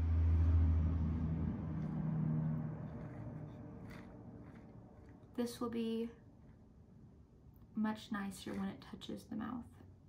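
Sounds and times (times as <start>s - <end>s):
low rumble with hum: 0.0s - 8.2s.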